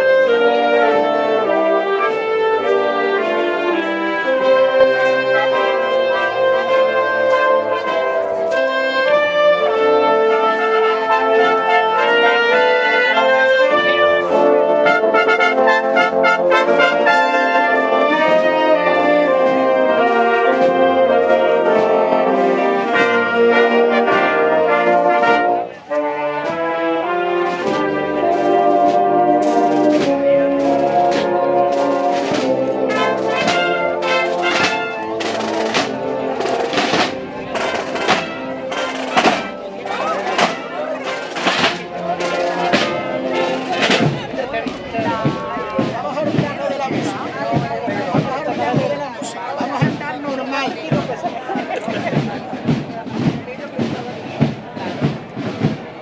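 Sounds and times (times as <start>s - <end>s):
marching band playing a march: 0.0s - 56.0s
sharp percussive strikes: 29.4s - 47.6s.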